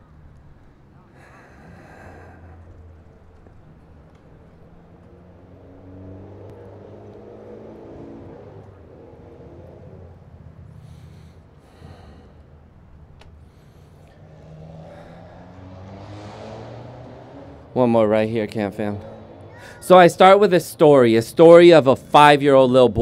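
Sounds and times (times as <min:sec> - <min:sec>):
faint car engine passing: 0:00.0 - 0:23.0.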